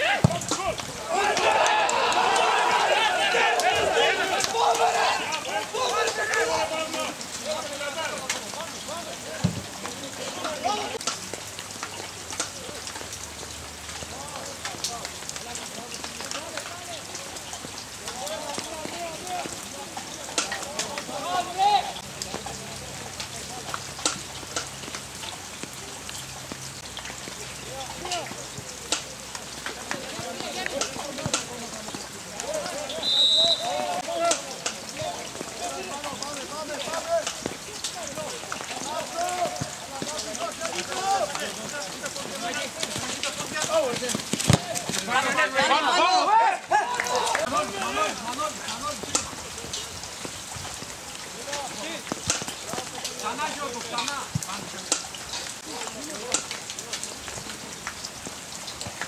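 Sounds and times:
players shouting: 0.0s - 11.1s, 18.0s - 22.6s, 29.7s - 49.3s
referee's whistle blast: 32.9s - 33.9s
ball taps and thuds: 42.8s - 45.7s.

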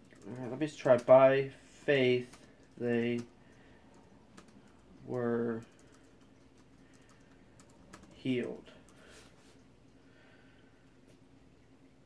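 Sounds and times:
typing on laptop keyboard: 0.0s - 1.3s, 2.2s - 9.0s.

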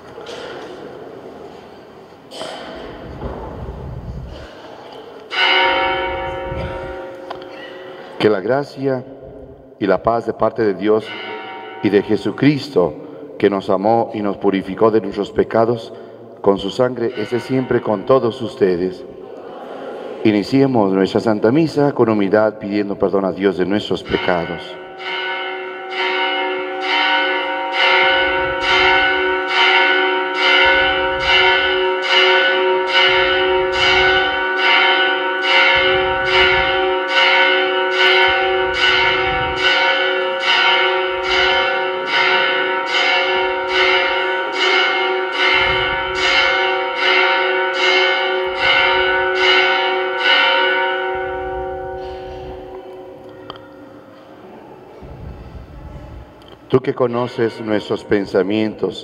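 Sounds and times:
bells ringing: 5.2s - 9.6s, 10.8s - 13.2s, 16.6s - 19.0s, 23.6s - 53.8s, 57.0s - 59.0s.

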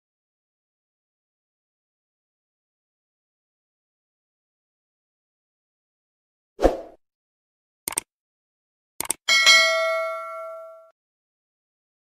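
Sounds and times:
mouse click: 7.9s - 8.1s
bell ding: 9.3s - 11.0s.

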